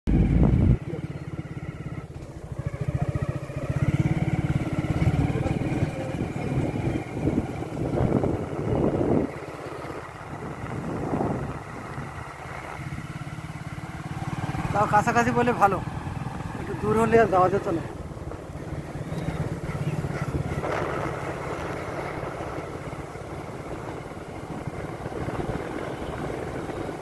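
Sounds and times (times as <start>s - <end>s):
small motorcycle engine running: 0.1s - 27.0s.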